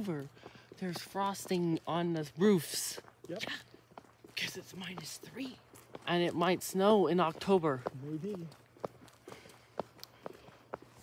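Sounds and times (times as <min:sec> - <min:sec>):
footsteps on concrete: 0:00.0 - 0:11.0.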